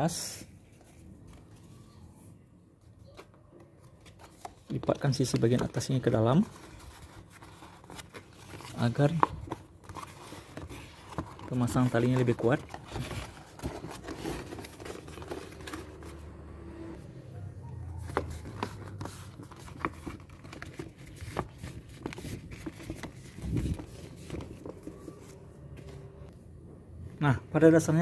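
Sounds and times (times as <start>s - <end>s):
paper rustling and crinkling: 3.0s - 16.2s, 18.0s - 26.1s.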